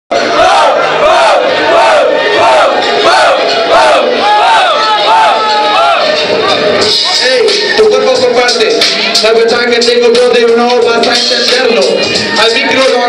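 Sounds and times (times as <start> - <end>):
crowd chanting: 0.1 - 7.2.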